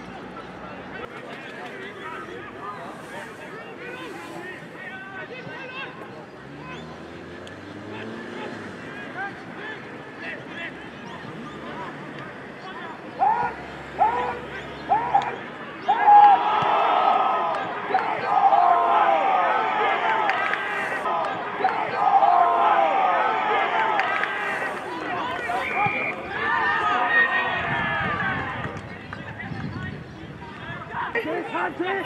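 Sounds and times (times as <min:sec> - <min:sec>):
crowd yelling and cheering: 0:00.0 - 0:32.0
spectators shouting calls: 0:00.0 - 0:32.0.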